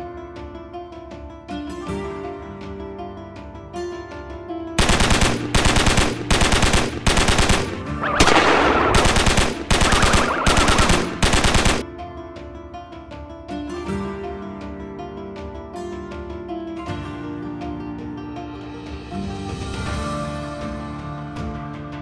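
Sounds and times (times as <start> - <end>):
automatic gunfire bursts: 4.8 - 11.8
light music: 12.2 - 22.0.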